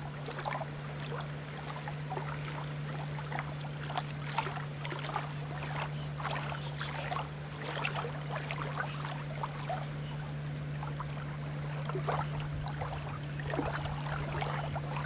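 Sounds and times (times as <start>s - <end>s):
steady low hum: 0.0s - 15.0s
water lapping and splashing: 0.0s - 15.0s.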